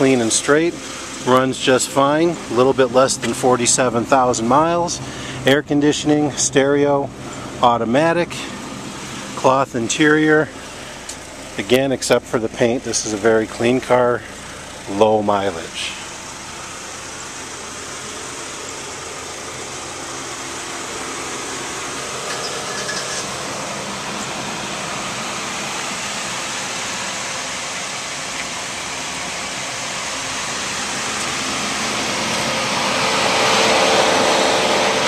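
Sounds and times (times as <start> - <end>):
car engine idling: 0.0 - 35.0.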